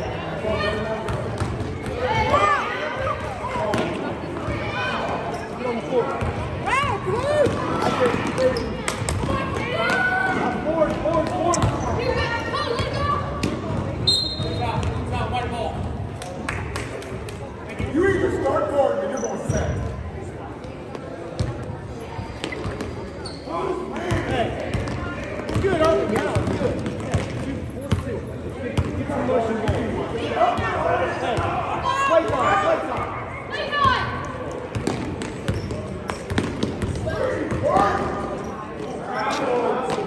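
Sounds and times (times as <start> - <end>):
sneaker squeaks: 7.4 - 9.0, 11.5 - 12.2, 14.0 - 15.0, 19.1 - 19.9, 22.2 - 23.8, 34.8 - 36.8
basketball dribbling thuds: 24.1 - 28.0.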